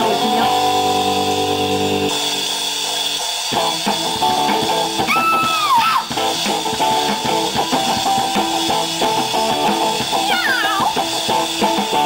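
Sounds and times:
electric guitars holding a chord: 0:00.0 - 0:12.0.

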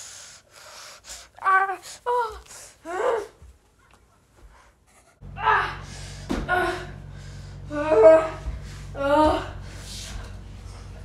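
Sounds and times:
steady low hum: 0:00.0 - 0:11.0
boy's wordless vocal sounds: 0:01.2 - 0:03.4.

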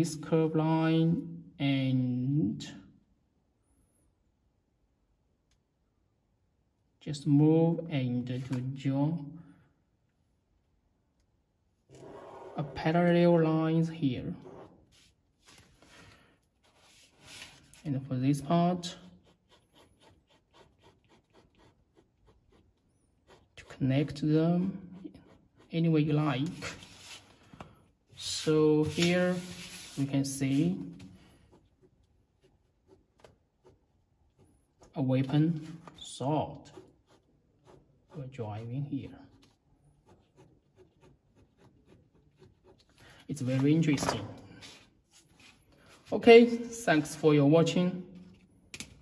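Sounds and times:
pen scratching on paper: 0:11.9 - 0:13.2, 0:14.4 - 0:15.2, 0:18.8 - 0:27.2, 0:28.8 - 0:34.9, 0:36.5 - 0:43.0.

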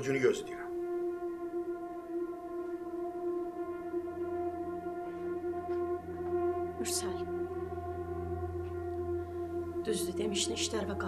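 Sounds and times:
long held drone note: 0:00.0 - 0:11.0.

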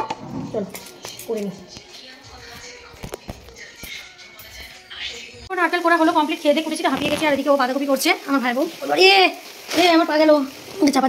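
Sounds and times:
high-pitched voice singing: 0:00.6 - 0:05.4.

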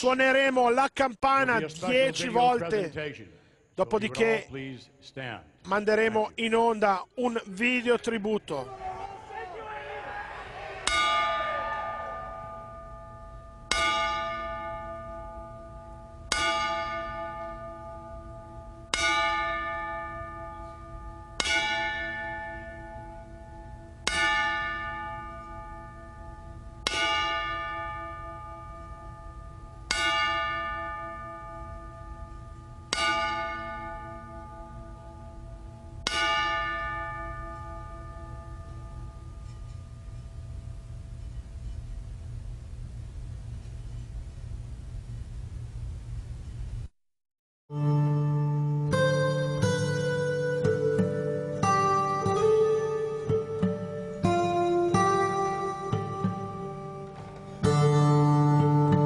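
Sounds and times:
ring bell struck: 0:10.8 - 0:40.4.

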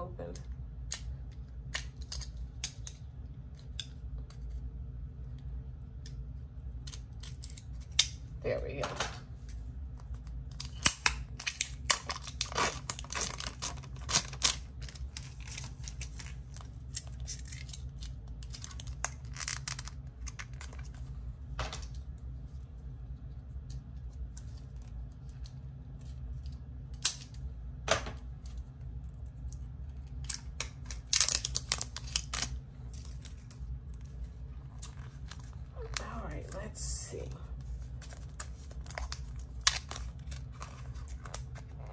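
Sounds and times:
steady low hum: 0:00.0 - 0:41.9
plastic packaging crackling: 0:10.5 - 0:21.1, 0:30.1 - 0:33.7, 0:37.6 - 0:41.9.

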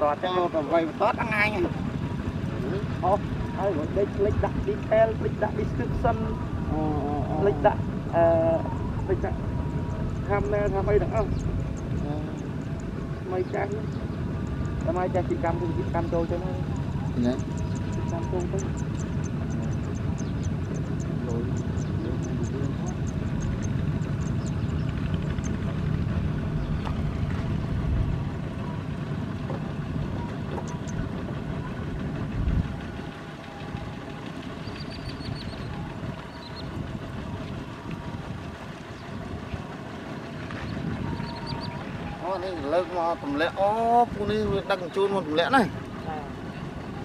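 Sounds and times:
diesel engines clattering: 0:00.0 - 0:47.0.

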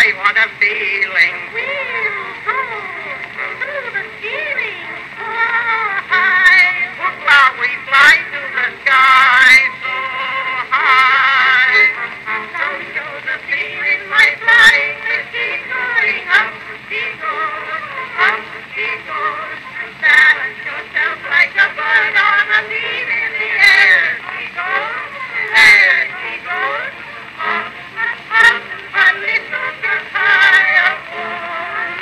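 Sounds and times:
old recording of vocal duet: 0:00.0 - 0:32.0.

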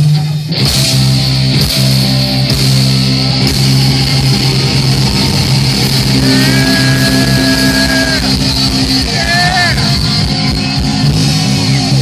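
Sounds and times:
distorted guitars and bass chord: 0:00.0 - 0:12.0
high lead guitar note: 0:02.1 - 0:10.6.

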